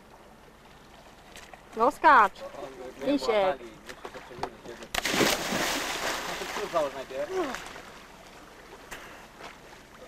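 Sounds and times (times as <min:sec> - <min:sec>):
person splashing into water: 0:04.9 - 0:07.9.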